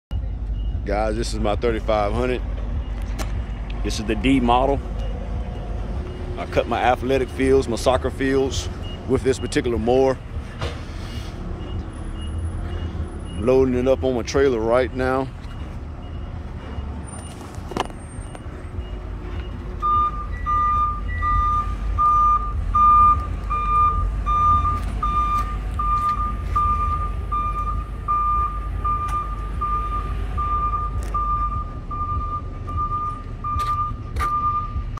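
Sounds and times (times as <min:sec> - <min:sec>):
low engine rumble: 0:00.1 - 0:34.9
vehicle reversing alarm beeping: 0:00.1 - 0:34.9.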